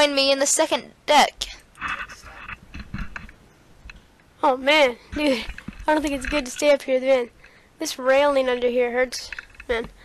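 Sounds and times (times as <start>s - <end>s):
small taps and clicks: 1.8s - 4.0s, 5.1s - 7.6s, 9.1s - 10.0s.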